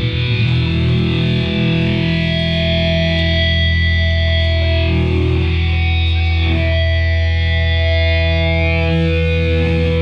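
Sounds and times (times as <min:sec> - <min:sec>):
distorted guitar and bass chord: 0:00.0 - 0:10.0.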